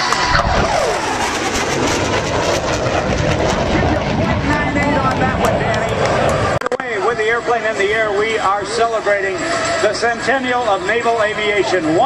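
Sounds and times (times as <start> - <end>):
jet making fast low pass: 0.0 - 6.6.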